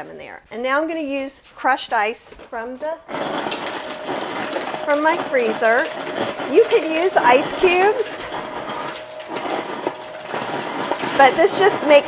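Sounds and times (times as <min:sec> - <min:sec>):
ice dispenser crushing ice: 0:02.5 - 0:12.0.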